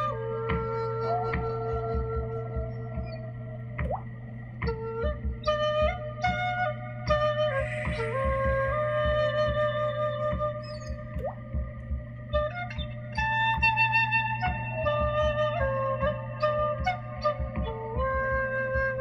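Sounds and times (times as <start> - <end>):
flute slow melody: 0.0 - 19.0
soft pulsing low beat: 0.0 - 19.0.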